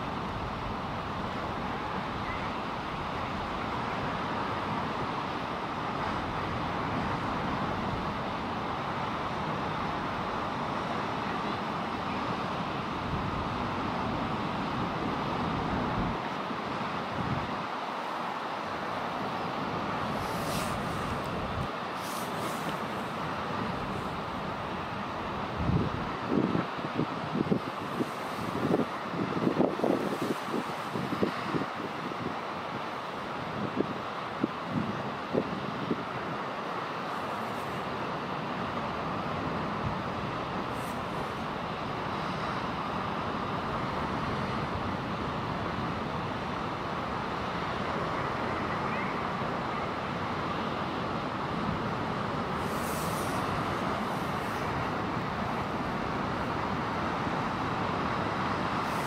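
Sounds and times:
sea and wind: 0:00.0 - 0:59.0.

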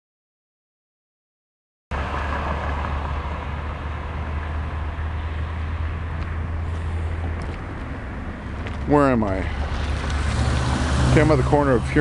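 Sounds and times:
cars passing with tyre hiss: 0:01.9 - 0:12.0.

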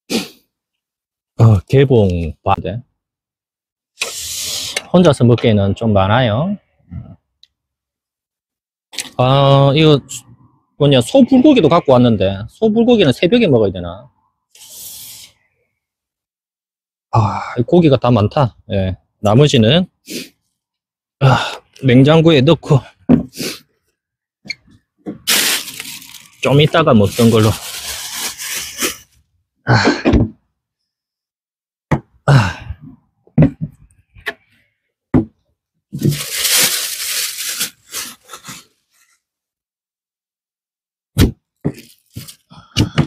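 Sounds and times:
man grunting and exhaling: 0:21.2 - 0:21.7, 0:29.6 - 0:30.3, 0:32.2 - 0:33.0, 0:42.4 - 0:43.0.

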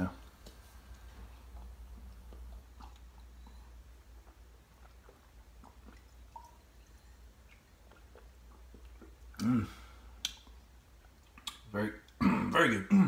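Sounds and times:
low steady hum: 0:00.0 - 0:13.0
man gulping and swallowing: 0:01.2 - 0:13.0
mouth clicks: 0:07.4 - 0:09.6, 0:10.2 - 0:12.2.

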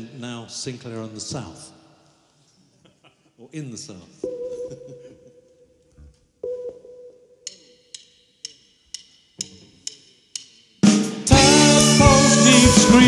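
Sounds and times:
drumstick clicks: 0:07.4 - 0:11.0
full band playing: 0:10.8 - 0:13.0.

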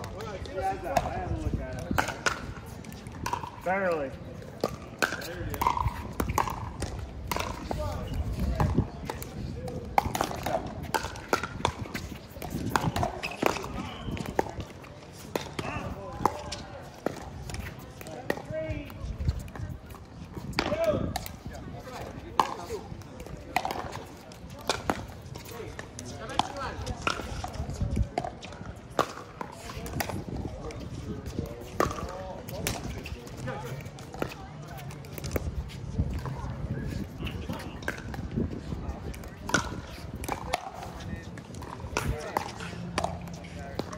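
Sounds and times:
paddles hitting ball: 0:04.6 - 0:19.5, 0:31.6 - 0:35.4, 0:37.5 - 0:43.9.

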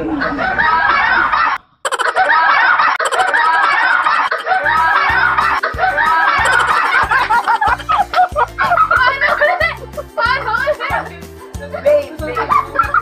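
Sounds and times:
teenagers laughing and shrieking: 0:00.0 - 0:11.0, 0:12.4 - 0:13.0
bass-heavy music beat: 0:04.5 - 0:13.0.

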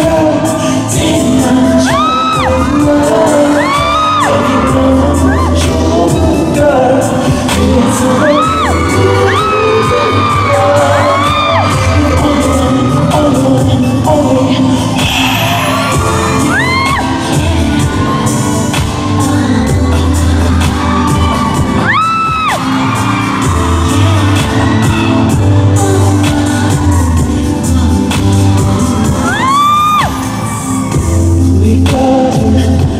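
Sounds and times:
loud pop music through speakers: 0:00.0 - 0:32.9
audience screaming: 0:01.7 - 0:31.4.

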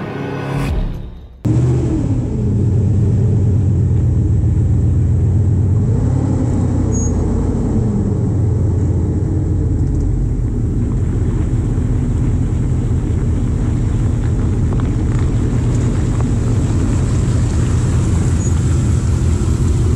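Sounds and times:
engine running at low revs: 0:01.4 - 0:19.9.

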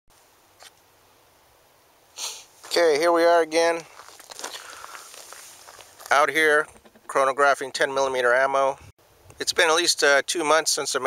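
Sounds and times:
footsteps on gravel: 0:02.5 - 0:07.2.

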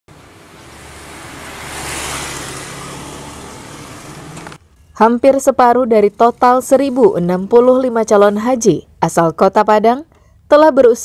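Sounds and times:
vehicle passing by: 0:00.1 - 0:04.6.

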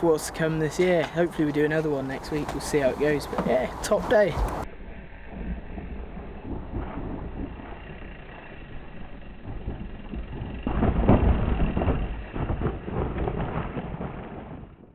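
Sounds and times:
bikes rattling: 0:00.0 - 0:14.8
wind buffeting microphone: 0:00.0 - 0:14.9.

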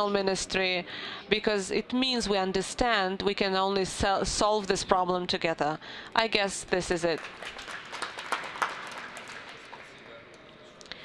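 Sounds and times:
light applause: 0:07.1 - 0:10.5.

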